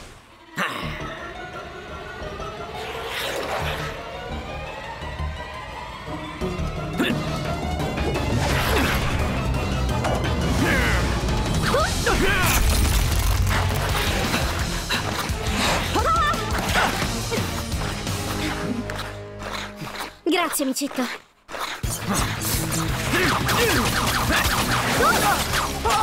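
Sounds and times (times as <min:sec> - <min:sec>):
dramatic background score: 0:00.0 - 0:26.0.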